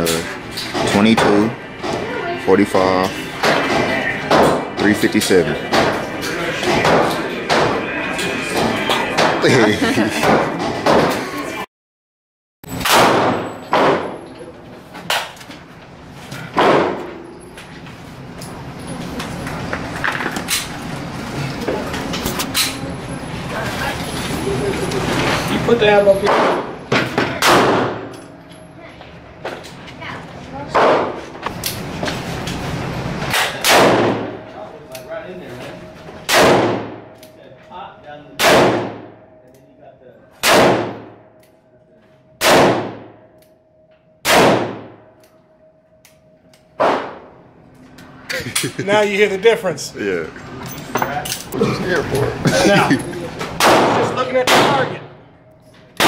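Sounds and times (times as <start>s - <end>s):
handgun shots echoing: 12.8s - 14.2s, 40.4s - 41.1s, 42.4s - 43.1s, 44.2s - 44.9s.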